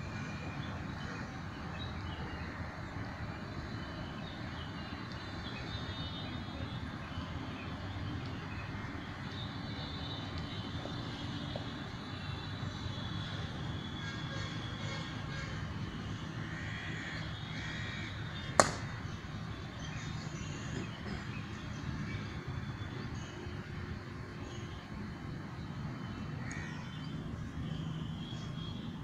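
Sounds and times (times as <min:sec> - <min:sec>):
sharp knock: 0:18.6 - 0:18.9.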